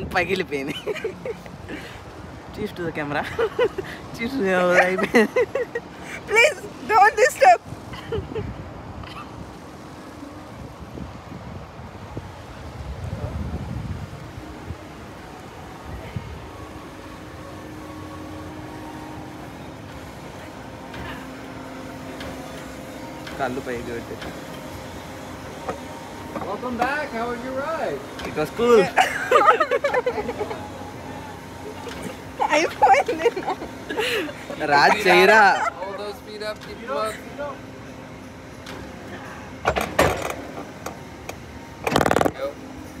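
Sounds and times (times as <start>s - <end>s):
ride machinery humming: 0.0s - 43.0s.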